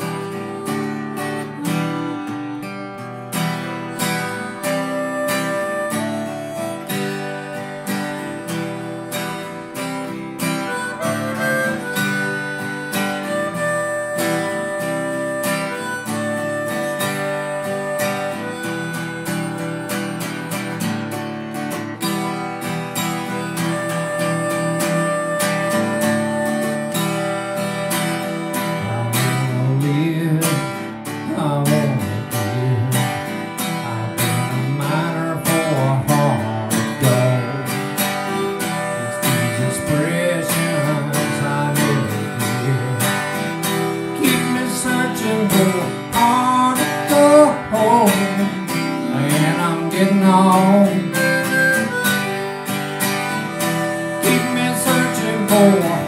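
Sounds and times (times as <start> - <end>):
man singing: 0.0 - 2.6, 28.2 - 52.2, 53.6 - 56.0
acoustic guitar strumming: 0.0 - 56.0
harmonica melody: 0.0 - 56.0.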